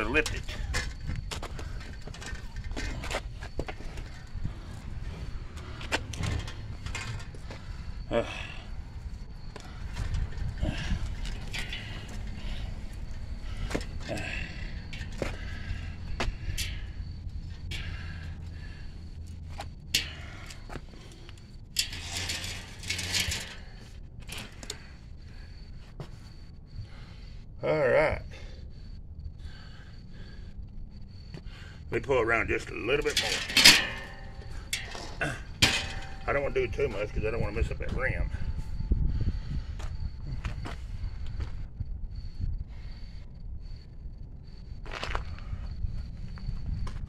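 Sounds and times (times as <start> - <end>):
metal frame clicks and rattles: 19.3 - 24.8, 33.0 - 36.8.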